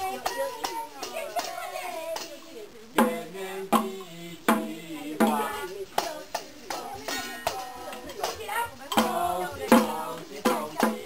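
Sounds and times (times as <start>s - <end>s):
hand percussion struck: 0.0s - 11.0s
person singing: 0.0s - 11.0s.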